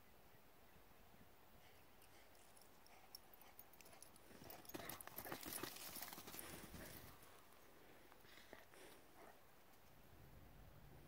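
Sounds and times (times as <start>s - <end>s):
footsteps on dry dirt and twigs: 4.6s - 7.2s.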